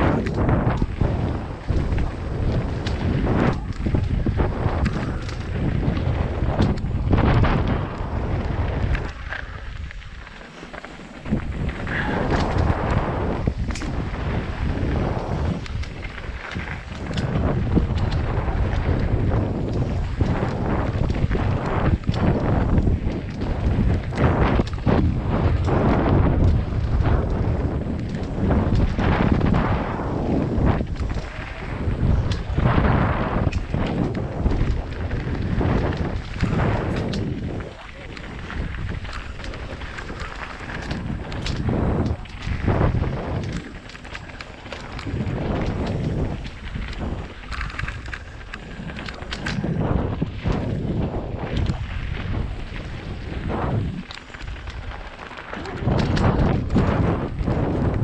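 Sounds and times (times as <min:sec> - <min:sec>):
bike knocks and rattles: 0:00.0 - 0:58.0
tyres on loose gravel: 0:00.0 - 0:58.0
wind buffeting microphone: 0:00.0 - 0:58.0.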